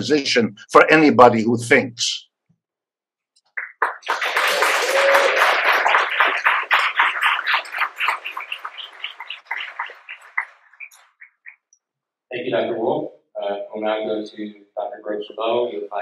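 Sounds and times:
audience applauding: 0:03.5 - 0:11.5.

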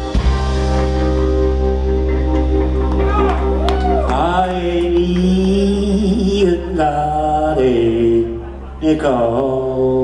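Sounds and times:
drums: 0:00.0 - 0:04.3
electric guitar: 0:00.0 - 0:08.8
bass guitar: 0:00.0 - 0:10.0.

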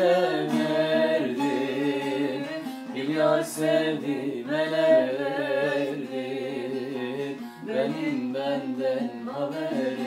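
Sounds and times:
man singing folk song: 0:00.0 - 0:10.0.

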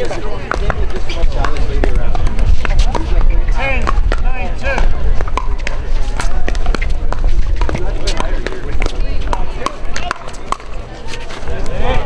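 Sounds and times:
people's voices: 0:00.0 - 0:12.0
paddles hitting plastic ball: 0:03.8 - 0:10.8.

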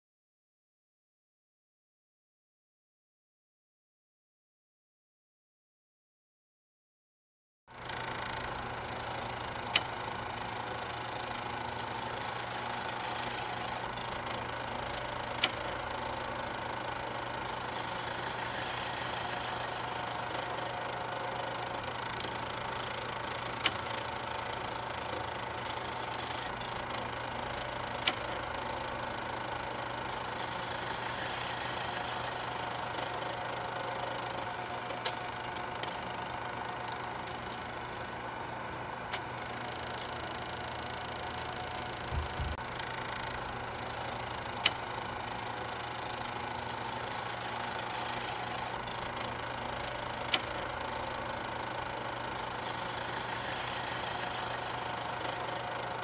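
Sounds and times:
mechanical hum with hiss: 0:07.9 - 0:56.0.

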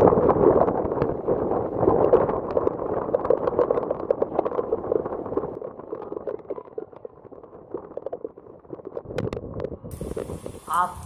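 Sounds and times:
heavy rain: 0:00.0 - 0:07.4, 0:09.8 - 0:11.0
wind buffeting microphone: 0:00.0 - 0:11.0.

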